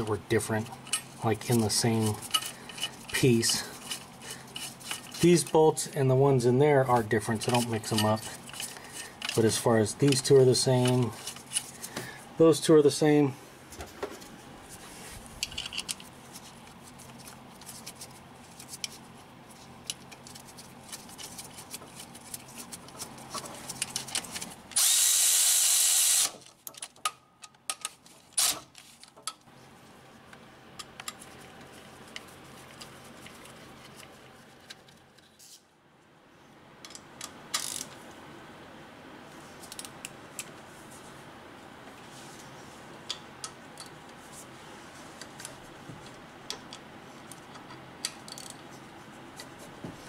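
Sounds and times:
tool handling clicks and knocks: 0.8s - 5.5s, 7.0s - 12.1s, 15.4s - 16.1s, 26.5s - 28.2s
cordless ratchet running: 24.7s - 26.4s.

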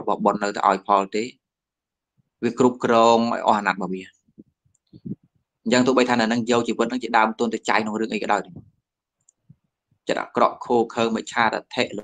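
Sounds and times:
man speaking: 0.0s - 1.4s, 2.4s - 4.2s, 5.6s - 8.7s, 10.0s - 12.0s.

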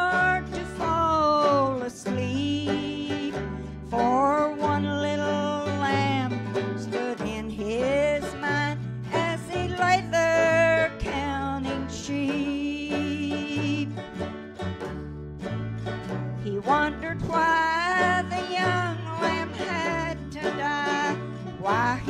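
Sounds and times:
woman singing: 0.0s - 14.2s, 16.4s - 22.0s
low bass notes: 0.0s - 22.0s
strummed acoustic guitar: 0.0s - 22.0s.

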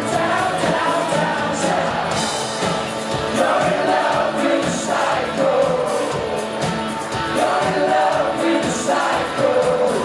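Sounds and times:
crowd singing along: 0.0s - 10.0s
live rock band playing: 0.0s - 10.0s
male lead vocal: 0.0s - 10.0s.

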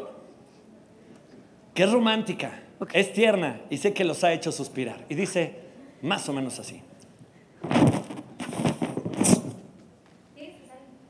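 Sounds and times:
rubber balloon creaking: 7.6s - 9.7s.

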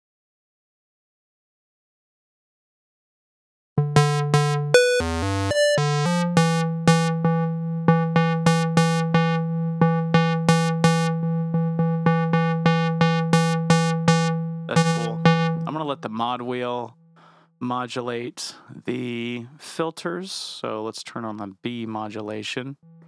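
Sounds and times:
plucky synthesizer notes: 3.8s - 16.9s
steady low synth tone: 6.8s - 17.0s.

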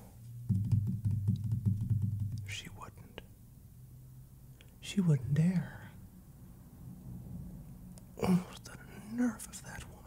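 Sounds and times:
whispered mutter: 2.4s - 3.3s, 8.2s - 10.0s.

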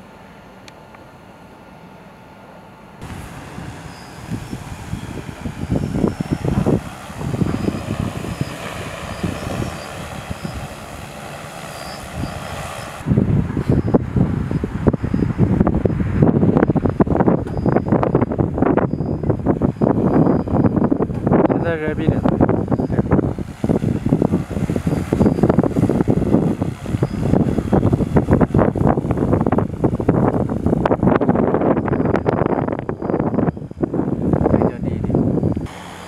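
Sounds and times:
drone rotor noise: 2.8s - 36.0s
wind buffeting microphone: 3.0s - 36.0s.

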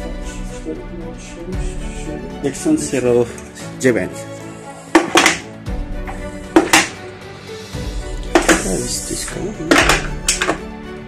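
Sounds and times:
background music: 0.0s - 11.0s
metal dies clacking: 5.0s - 5.4s, 6.6s - 7.0s, 9.7s - 10.6s.

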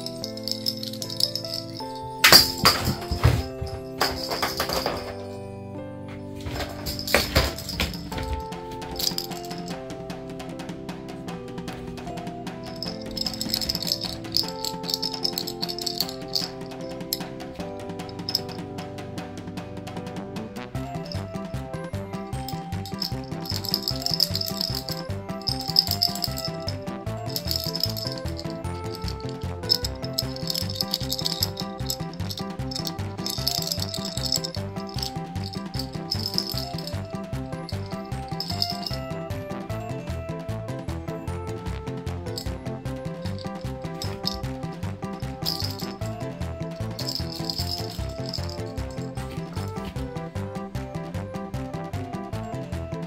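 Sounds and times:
rattle ball shaken: 0.0s - 5.3s, 6.4s - 9.8s, 12.5s - 17.4s, 18.0s - 18.7s, 21.0s - 21.4s, 22.3s - 39.2s, 42.3s - 50.2s
background music with beat: 0.0s - 5.4s, 6.0s - 53.0s.

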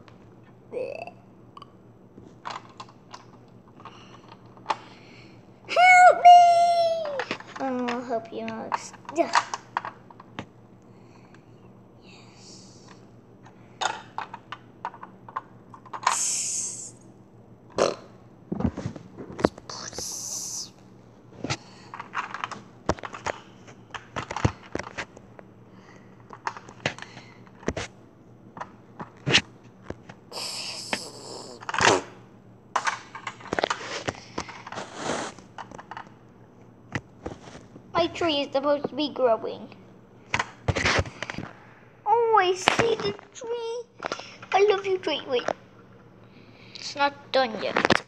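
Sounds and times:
child's mouth noises: 19.6s - 20.7s, 30.3s - 32.0s.

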